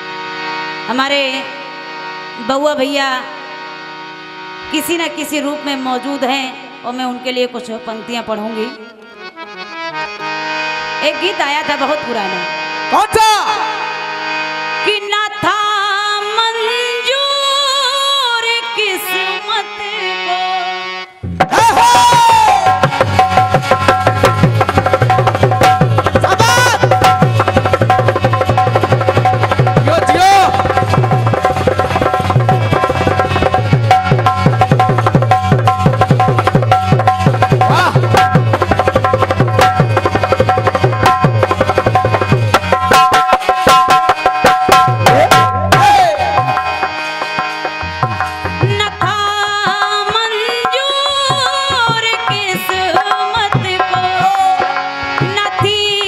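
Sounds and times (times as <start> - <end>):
harmonium playing: 0.0 - 56.0.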